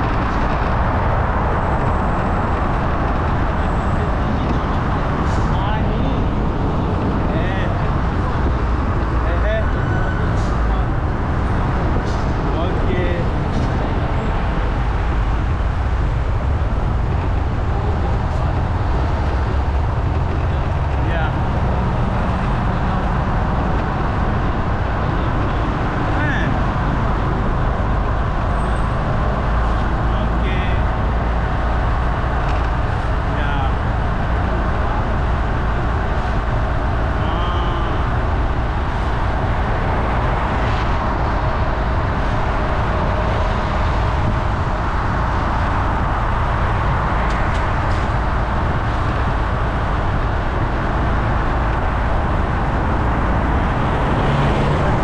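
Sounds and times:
city traffic: 0.0s - 55.0s
wind and road noise: 0.0s - 55.0s.

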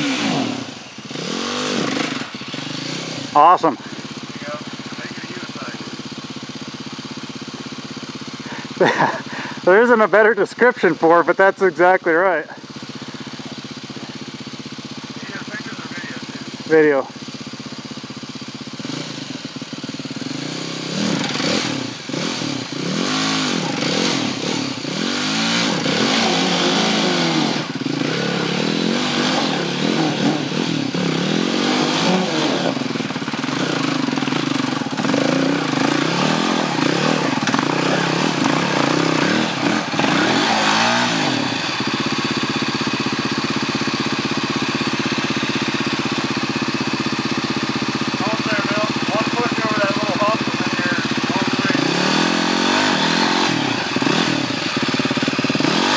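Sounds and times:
dirt bike engine revving: 0.0s - 55.9s.

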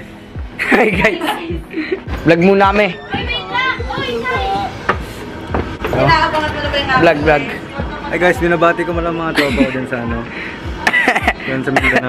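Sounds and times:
low thumping beat: 0.0s - 12.0s.

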